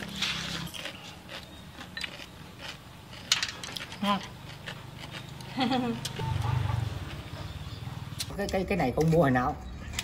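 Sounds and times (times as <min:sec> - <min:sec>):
woman speaking: 0:08.3 - 0:09.7.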